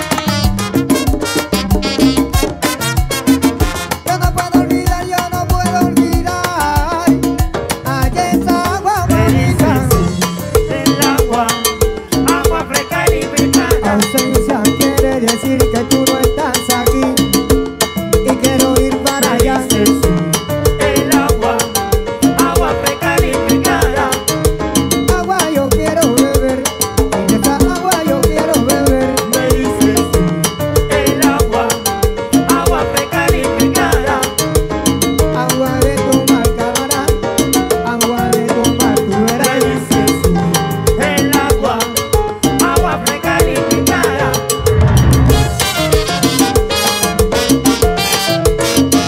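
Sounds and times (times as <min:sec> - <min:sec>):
salsa band playing: 0:00.0 - 0:49.0.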